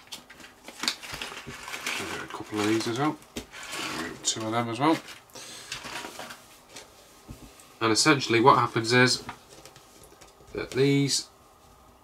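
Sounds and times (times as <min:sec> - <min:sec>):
plastic bag crinkling: 0:00.0 - 0:06.4.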